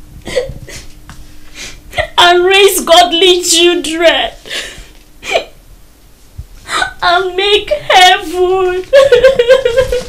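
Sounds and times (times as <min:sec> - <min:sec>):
woman sobbing: 0:00.2 - 0:00.9, 0:01.9 - 0:02.2, 0:04.5 - 0:05.6, 0:06.7 - 0:07.0, 0:08.8 - 0:10.0
woman speaking: 0:02.0 - 0:04.4, 0:06.7 - 0:09.2.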